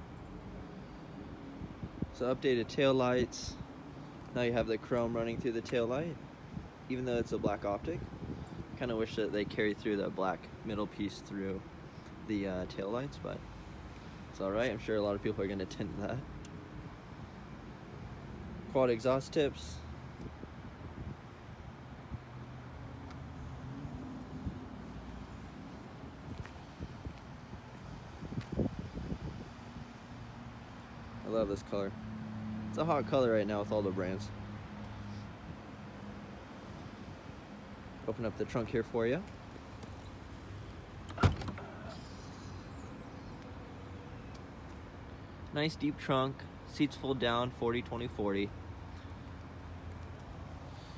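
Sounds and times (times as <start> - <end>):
light wind on microphone: 6.5 - 9.4, 23.6 - 30.0
trunk latch clunk: 41.0 - 42.0
trunk lid swinging up: 41.0 - 42.3.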